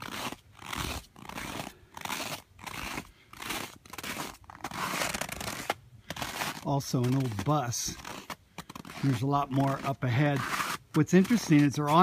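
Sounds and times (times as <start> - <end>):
footsteps crunching through snow: 0.0 - 12.0.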